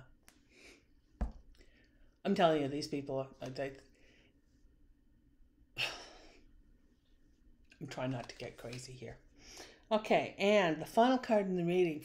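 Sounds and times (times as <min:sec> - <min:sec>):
woman sighing: 0:05.8 - 0:06.4.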